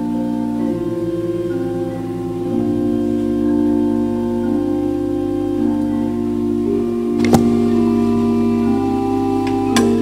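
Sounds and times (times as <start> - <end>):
organ playing sustained chords: 0.0 - 10.0.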